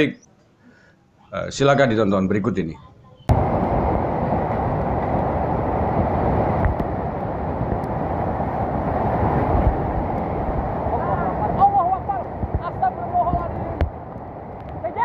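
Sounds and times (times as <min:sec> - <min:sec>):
floodwater rushing: 0:03.3 - 0:15.0.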